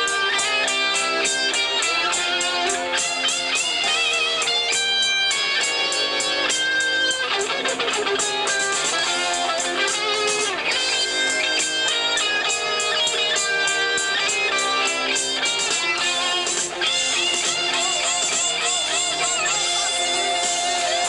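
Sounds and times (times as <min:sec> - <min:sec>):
bass guitar: 0:00.0 - 0:21.0
drums with cymbal beat: 0:00.0 - 0:21.0
electric guitar lead: 0:00.0 - 0:21.0
rhythm guitar: 0:00.0 - 0:21.0.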